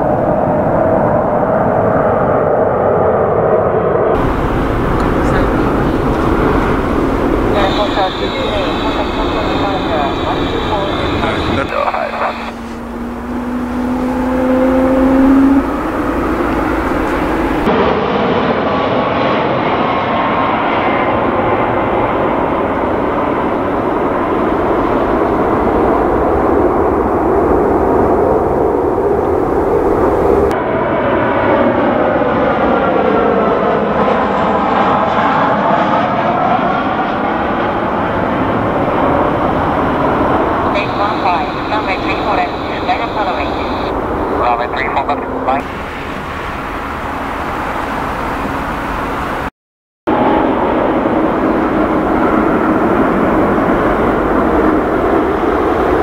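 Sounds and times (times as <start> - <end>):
jet passing with rush: 0.0 - 31.8, 34.0 - 49.5
approaching aircraft whine: 0.0 - 49.5, 50.1 - 56.0
jet engines roaring: 0.0 - 49.5, 50.1 - 56.0.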